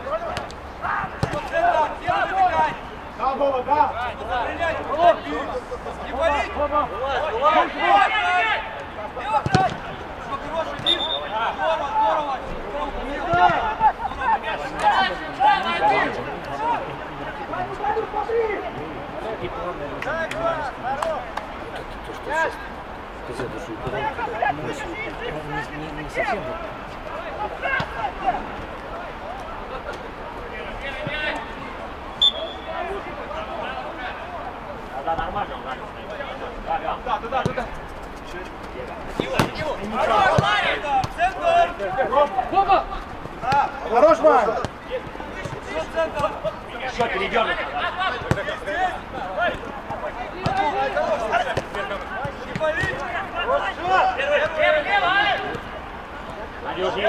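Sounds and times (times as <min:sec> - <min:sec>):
footballers shouting: 0:00.0 - 0:57.0.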